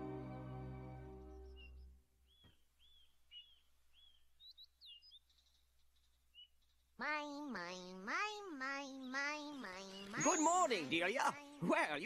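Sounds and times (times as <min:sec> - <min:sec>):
music chord: 0:00.0 - 0:01.5
bird chirps: 0:01.2 - 0:07.0, 0:08.7 - 0:11.1.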